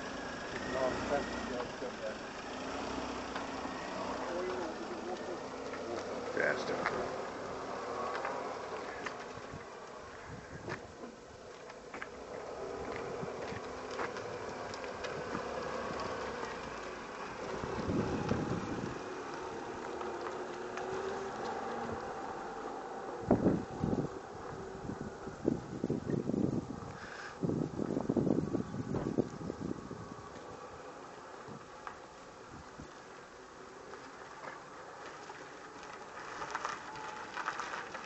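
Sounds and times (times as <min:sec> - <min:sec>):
car engine hum: 0:00.0 - 0:38.0
wind buffeting microphone: 0:08.8 - 0:11.5, 0:17.4 - 0:19.8, 0:23.1 - 0:30.8.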